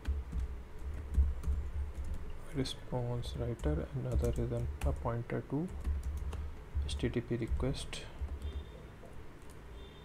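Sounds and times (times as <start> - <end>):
computer keyboard typing: 0.0 - 2.4, 3.1 - 9.6.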